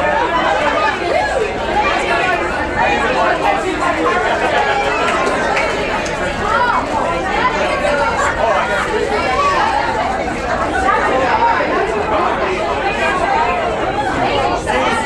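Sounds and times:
overlapping voices: 0.0s - 15.0s.

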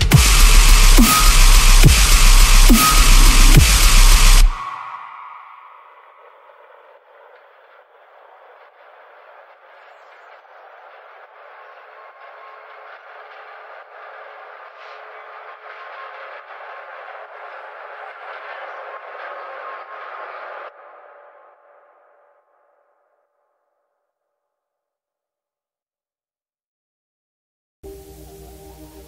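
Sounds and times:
grainy noise texture: 0.0s - 22.8s.

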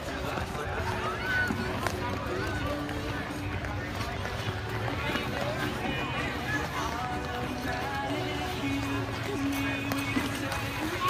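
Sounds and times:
chatter of many voices: 0.0s - 11.0s
music playing: 0.0s - 11.0s.

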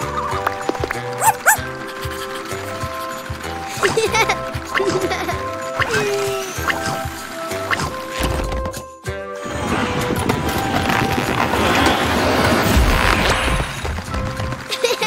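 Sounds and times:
cartoon background music: 0.0s - 11.2s.

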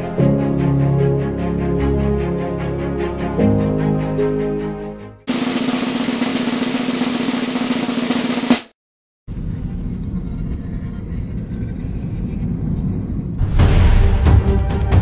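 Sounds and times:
drum roll: 5.3s - 8.7s.

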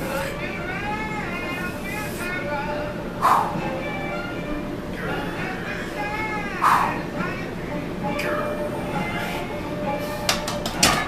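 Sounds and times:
background music: 0.0s - 11.0s
barbell clanking on metal: 10.3s - 11.0s.

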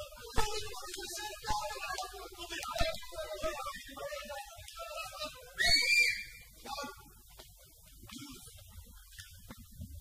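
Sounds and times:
shrill whistle blast: 5.6s - 6.4s.

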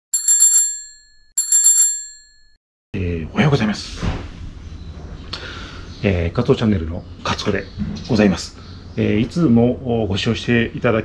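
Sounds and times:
bicycle bell ringing: 0.1s - 2.6s.

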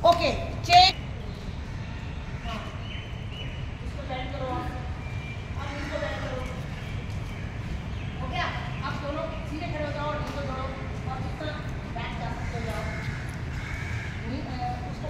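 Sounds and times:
people talking indistinctly: 0.0s - 6.9s, 8.0s - 15.0s.

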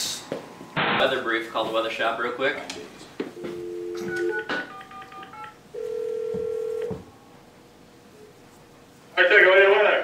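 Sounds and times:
telephone dial tone: 3.4s - 7.0s
touch-tone keypad beeps: 3.7s - 6.8s.

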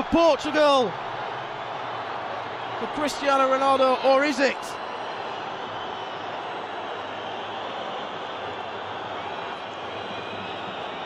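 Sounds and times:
stadium crowd noise: 0.0s - 11.0s.

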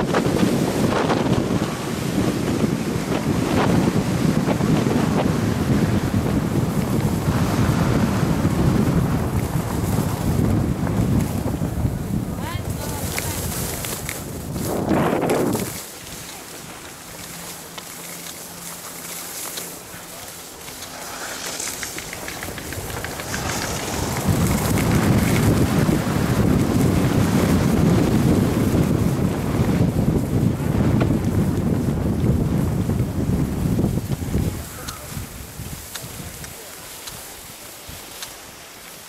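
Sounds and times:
skis scraping over snow: 0.0s - 39.0s
wind rushing over microphone: 0.0s - 39.0s.

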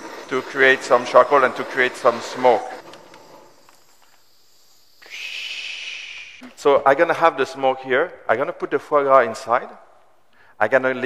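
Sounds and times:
gas torch hissing: 0.0s - 6.5s.

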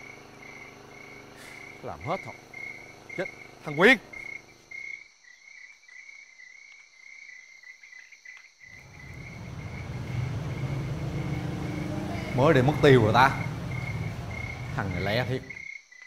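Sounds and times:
crickets chirping: 0.0s - 16.0s
low hum: 8.8s - 15.6s.

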